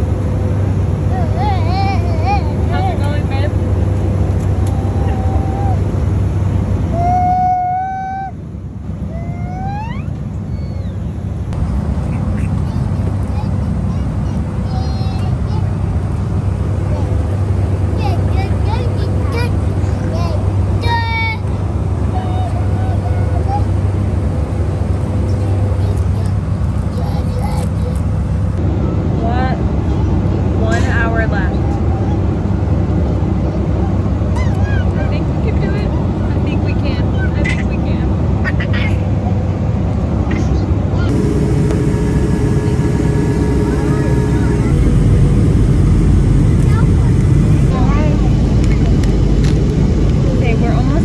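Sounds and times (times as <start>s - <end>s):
jet engine rumble and airflow: 0.0s - 51.0s.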